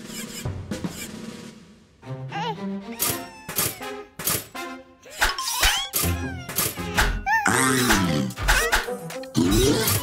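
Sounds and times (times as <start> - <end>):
cartoon music: 2.2 - 4.2, 5.0 - 10.0
squeaky creature calls: 7.2 - 8.7.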